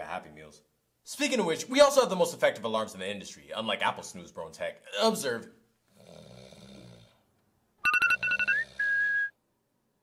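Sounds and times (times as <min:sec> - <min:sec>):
faint snore: 0:05.9 - 0:07.3, 0:08.2 - 0:09.0
phone alarm beeps: 0:07.8 - 0:09.3.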